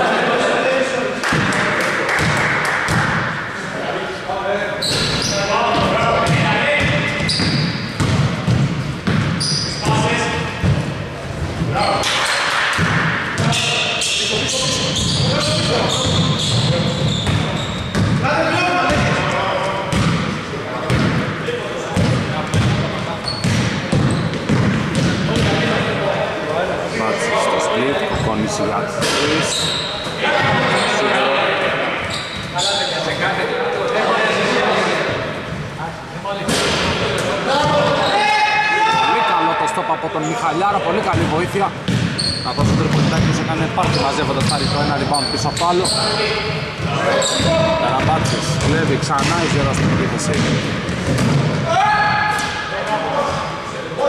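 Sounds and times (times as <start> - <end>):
echoing players' voices: 0.0 - 54.0
ball bouncing on hardwood court: 2.2 - 3.3, 5.7 - 10.0, 12.7 - 13.6, 16.0 - 18.2, 19.9 - 21.3, 22.0 - 25.7, 41.1 - 44.8, 46.8 - 51.7.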